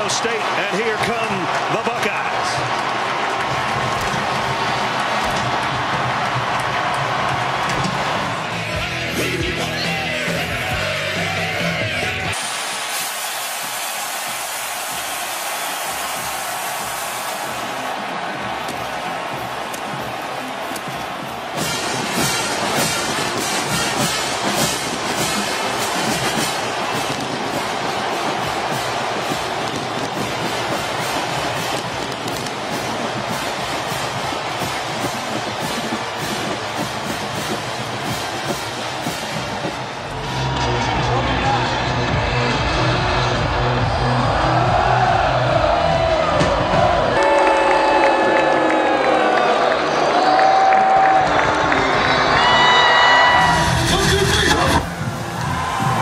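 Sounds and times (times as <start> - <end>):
stadium crowd cheering: 0.0 - 56.0
steady rhythmic beat: 12.4 - 41.0
music with heavy bass beat: 16.0 - 47.2, 53.2 - 56.0.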